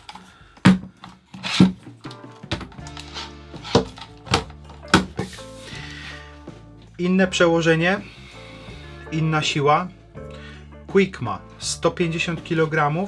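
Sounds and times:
background music: 0.0s - 13.0s.

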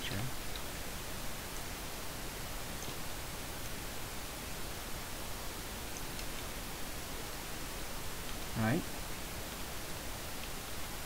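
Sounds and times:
microphone noise hiss: 0.0s - 11.0s.

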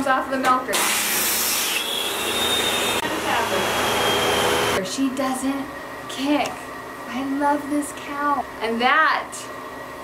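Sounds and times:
milking machine vacuum hissing: 0.8s - 4.8s
thin steady whistle: 1.7s - 3.0s.

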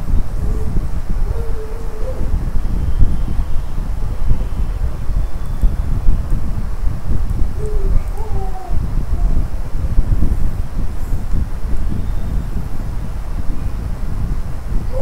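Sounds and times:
low wind rumble on microphone: 0.0s - 15.0s.

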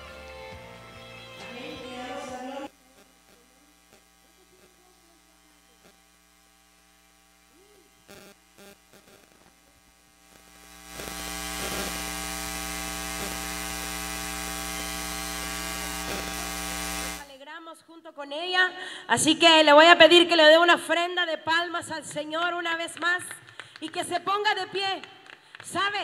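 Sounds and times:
loudspeaker hum with hiss: 0.0s - 17.4s.

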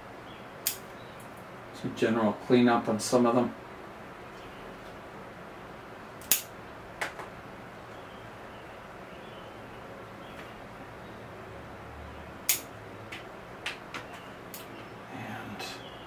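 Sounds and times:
scissors snipping twigs: 0.6s - 0.8s, 6.2s - 6.5s, 12.4s - 13.2s
faint steady hiss: 14.4s - 16.0s.

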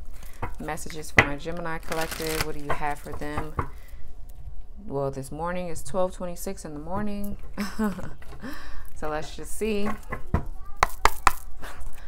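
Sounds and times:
cards tapping and snapping: 10.1s - 11.5s.

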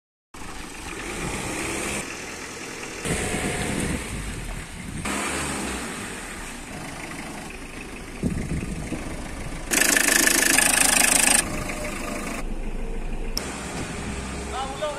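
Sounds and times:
car engine running: 0.4s - 5.1s, 6.2s - 14.9s.

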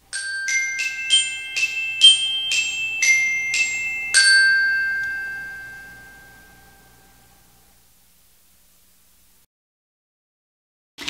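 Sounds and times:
bell-like chime ringing: 0.0s - 7.6s.

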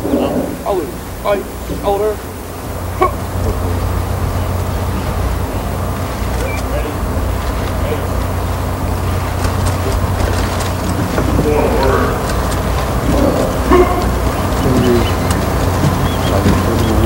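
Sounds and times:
open-air hiss: 0.0s - 17.0s.

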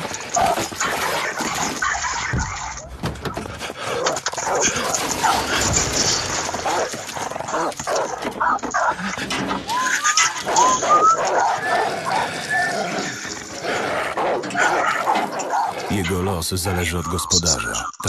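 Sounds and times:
dog barking: 4.0s - 5.6s, 6.6s - 9.0s, 10.1s - 12.6s, 14.2s - 15.8s
dog whimpering and whining: 9.7s - 13.0s.

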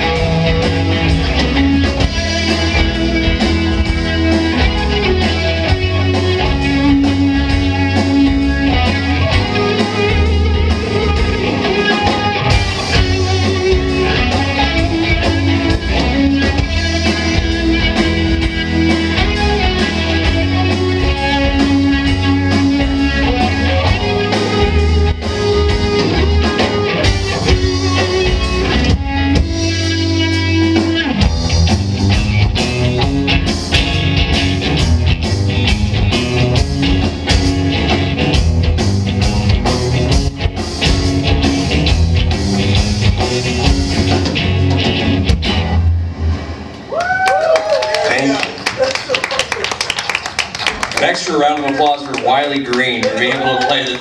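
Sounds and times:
drum kit: 0.0s - 48.3s
electric bass: 0.0s - 48.6s
electric guitars: 0.0s - 54.0s.

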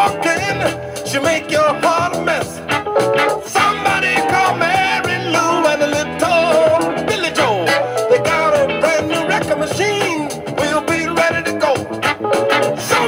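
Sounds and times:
jazz-funk band: 0.0s - 13.0s.

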